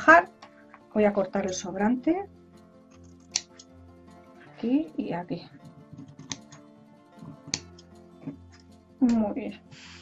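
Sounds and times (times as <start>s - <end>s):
soft mandolin music: 0.0s - 9.9s
scissors snipping ribbon: 3.0s - 3.7s, 5.8s - 6.6s.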